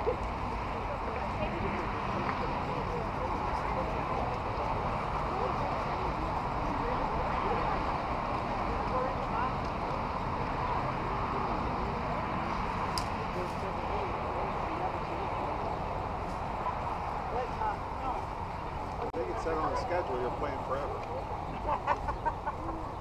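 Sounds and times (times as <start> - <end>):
distant babble of voices: 0.0 - 23.0.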